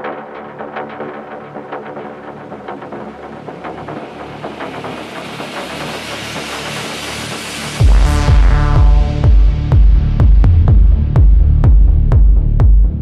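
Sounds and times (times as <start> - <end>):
techno music: 0.0 - 13.0
rising noise sweep: 7.6 - 10.8.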